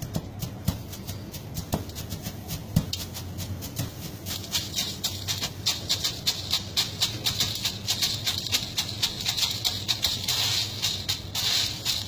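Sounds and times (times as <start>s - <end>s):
dry beans rustling in metal tub: 0.0s - 12.0s.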